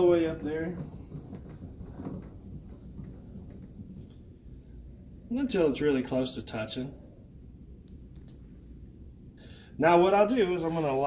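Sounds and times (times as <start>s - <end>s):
drill press table rattling: 0.0s - 4.6s.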